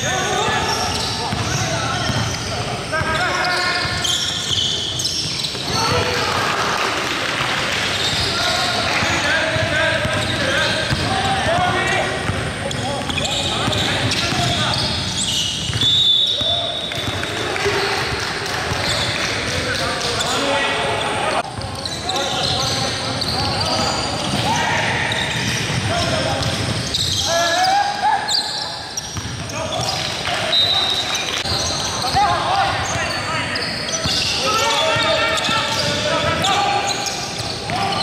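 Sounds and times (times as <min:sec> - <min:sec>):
sneakers squeaking: 0:00.0 - 0:06.3, 0:07.7 - 0:38.0
players calling out: 0:00.0 - 0:38.0
basketball bouncing: 0:01.3 - 0:02.3, 0:09.0 - 0:14.6, 0:15.6 - 0:15.8, 0:29.1 - 0:29.9.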